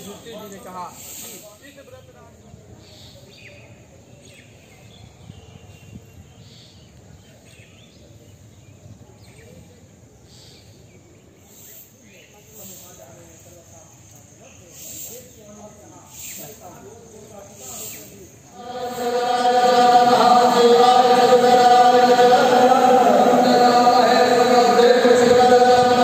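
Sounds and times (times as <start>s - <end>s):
group chanting: 18.5s - 26.0s.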